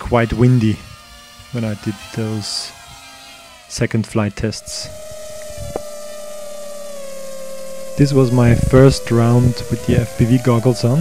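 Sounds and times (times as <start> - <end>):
quadcopter motors whining: 0.0 - 11.0.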